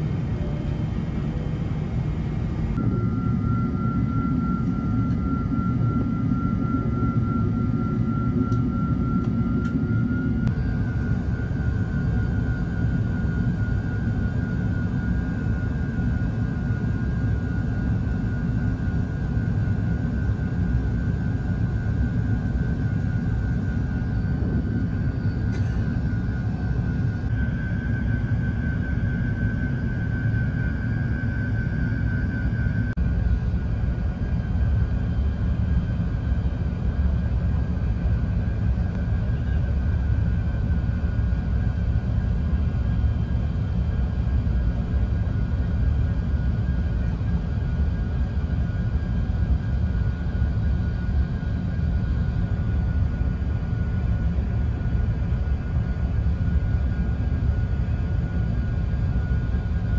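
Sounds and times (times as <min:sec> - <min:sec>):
airplane cabin engine rumble: 0:00.0 - 0:59.9.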